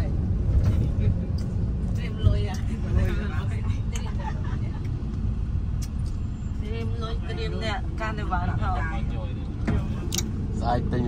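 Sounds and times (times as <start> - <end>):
low rumble of road vehicle: 0.0 - 11.0
street traffic: 0.0 - 11.0
people talking: 1.9 - 4.9, 6.6 - 10.0, 10.6 - 11.0.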